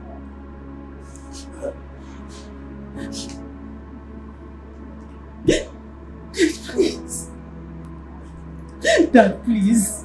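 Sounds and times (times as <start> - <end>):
soft background music: 0.0 - 10.0
woman sobbing: 8.8 - 9.8.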